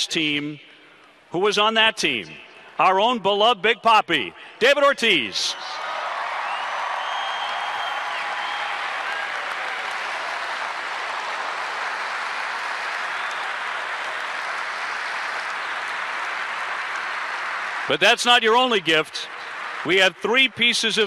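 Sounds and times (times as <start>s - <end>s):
large crowd applauding: 5.6s - 21.0s.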